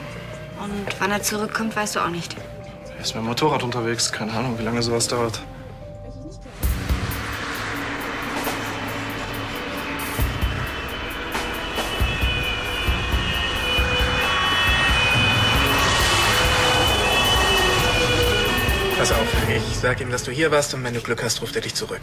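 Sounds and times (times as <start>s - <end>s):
background music: 0.0s - 22.0s
ambulance engine and road noise: 5.9s - 20.0s.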